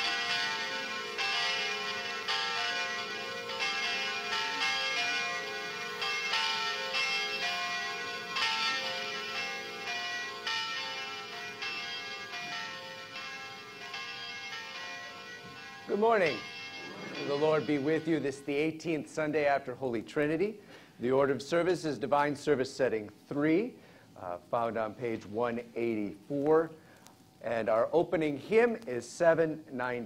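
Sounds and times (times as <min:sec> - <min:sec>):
church bells pealing: 0:00.0 - 0:19.8.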